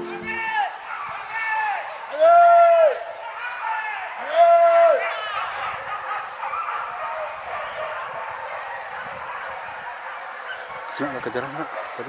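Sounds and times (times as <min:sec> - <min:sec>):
dogs barking and yelping: 0:00.0 - 0:12.0
loud drawn-out call: 0:00.0 - 0:12.0.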